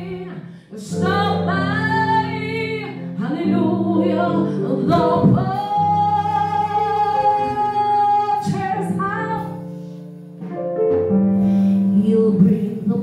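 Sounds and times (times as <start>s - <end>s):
woman singing gospel: 0.0s - 9.5s.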